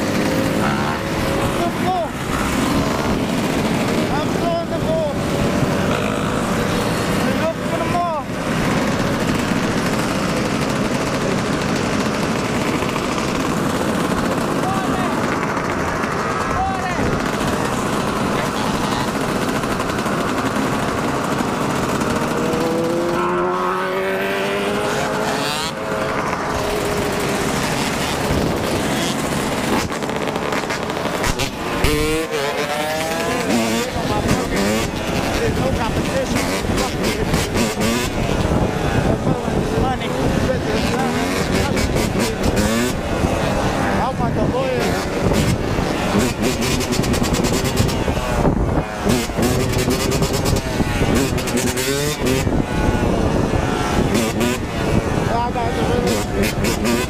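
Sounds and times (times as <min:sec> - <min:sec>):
dirt bike engine revving: 0:00.0 - 0:57.0
other dirt bikes running: 0:00.0 - 0:57.0.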